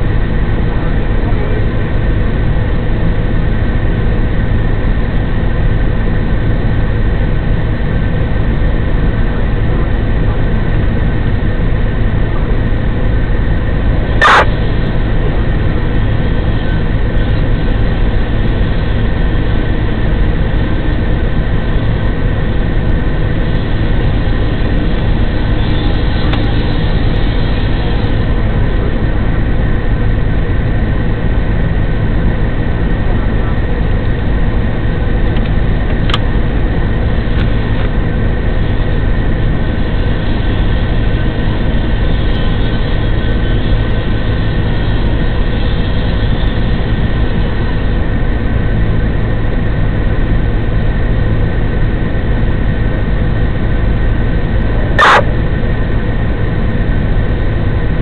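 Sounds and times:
diesel engine droning: 0.0s - 58.0s.

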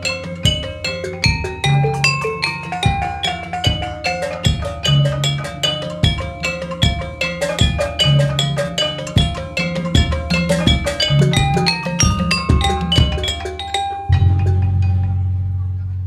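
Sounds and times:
kettle gongs ringing: 0.0s - 15.3s
low drum strokes: 0.0s - 16.0s.

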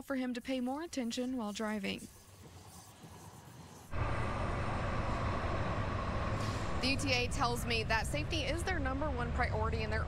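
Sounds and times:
light-rail train rumbling past: 3.9s - 9.4s.

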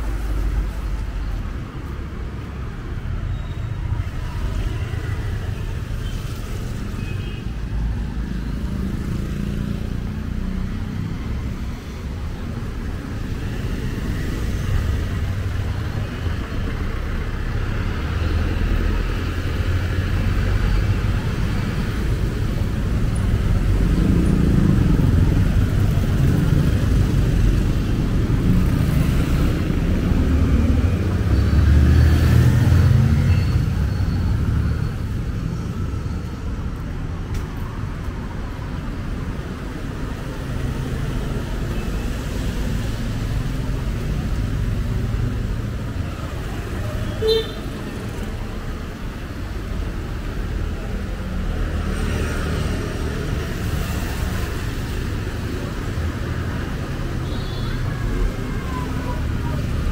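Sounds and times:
engine and tyre rumble: 0.0s - 59.9s
motorcycles passing: 8.3s - 37.2s.

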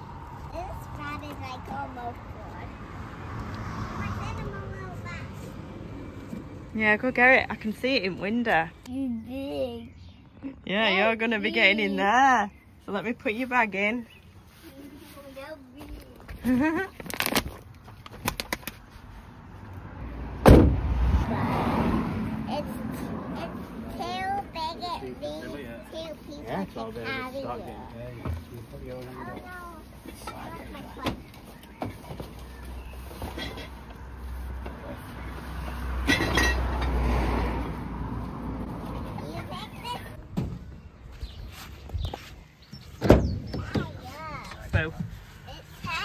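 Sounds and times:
loud bump of a box: 20.4s - 20.8s
sharp knock: 20.4s - 20.8s.

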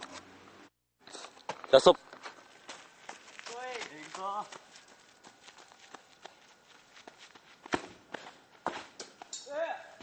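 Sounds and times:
running footsteps on gravel: 1.3s - 9.0s
ball being kicked: 7.6s - 9.2s.

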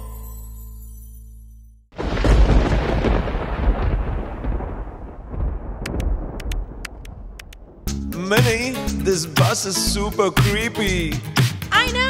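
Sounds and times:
deep loud rumble: 2.0s - 7.9s
sharp clicks: 5.8s - 7.6s.

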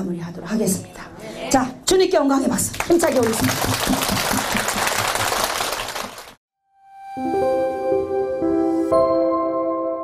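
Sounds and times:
audience applause: 2.8s - 6.4s.

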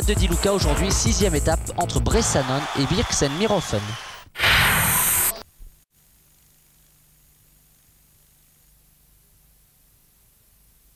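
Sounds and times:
loud noisy whoosh: 4.4s - 5.4s.

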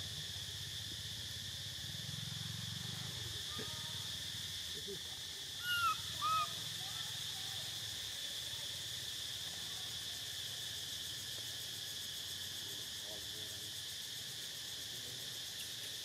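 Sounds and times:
high-pitched insect drone: 0.0s - 16.0s
rising and falling calls: 5.6s - 6.7s.

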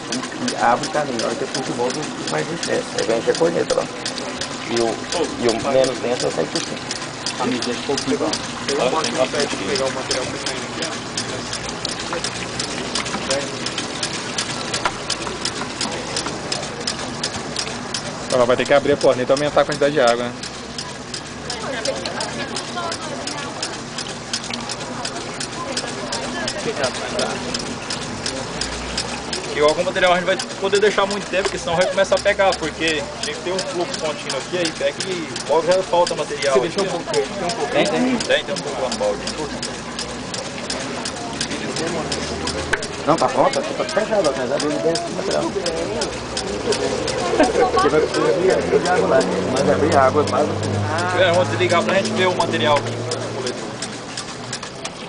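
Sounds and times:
water slurry pouring from bucket: 0.0s - 21.4s, 23.4s - 33.0s
background chatter: 0.0s - 55.0s
sharp ticks: 0.0s - 55.0s
people talking over one another: 18.0s - 54.1s.

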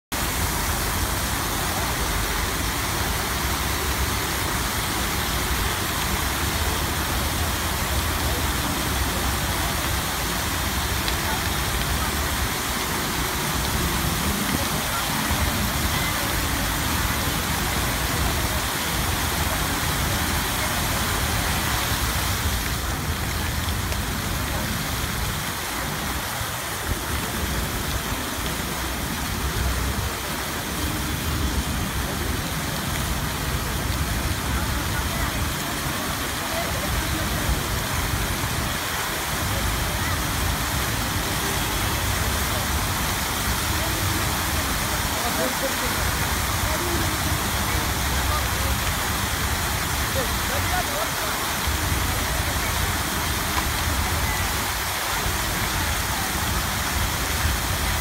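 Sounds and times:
fountain water spraying: 0.1s - 58.0s.

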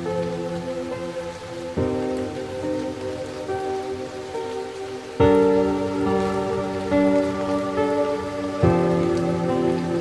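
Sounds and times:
rain: 0.0s - 10.0s
slow soft piano music: 0.0s - 10.0s.

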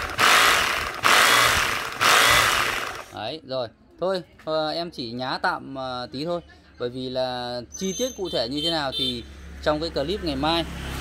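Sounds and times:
hammer drill running: 0.0s - 3.2s.

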